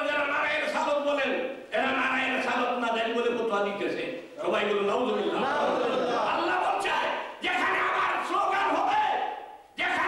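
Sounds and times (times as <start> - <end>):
man preaching into a microphone: 0.0 - 10.0.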